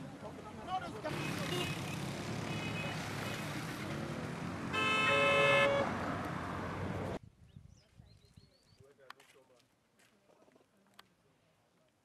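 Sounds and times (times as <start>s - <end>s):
road traffic noise: 0.0s - 7.2s
vehicle horn toot: 2.5s - 3.5s, 4.7s - 6.0s.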